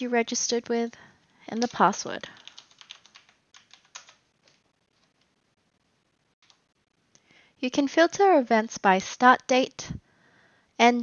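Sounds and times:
computer keyboard keystrokes: 1.5s - 4.2s.

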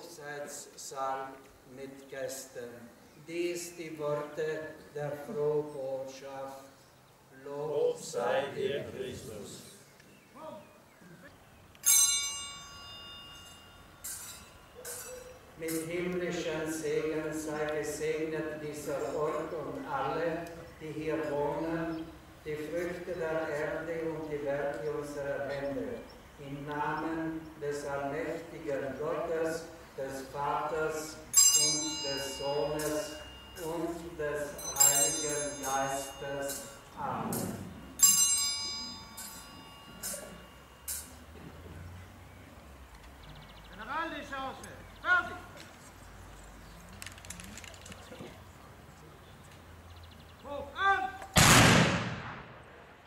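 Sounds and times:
small bell ringing: 11.8s - 15.9s, 31.1s - 41.3s.

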